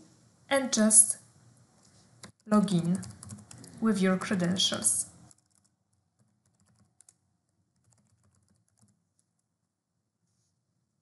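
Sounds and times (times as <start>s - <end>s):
faint computer keyboard typing: 2.2s - 9.7s.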